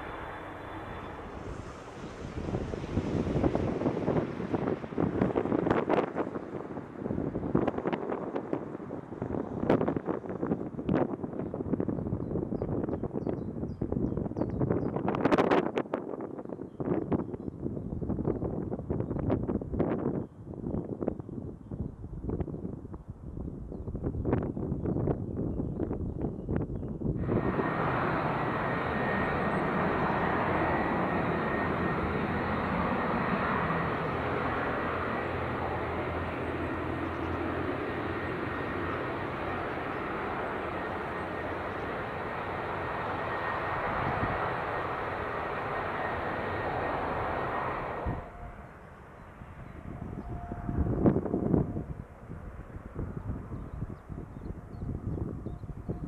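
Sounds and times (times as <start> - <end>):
jet engines roaring with whine: 0.0 - 21.0, 25.6 - 56.0
wind gusts on microphone: 0.0 - 56.0.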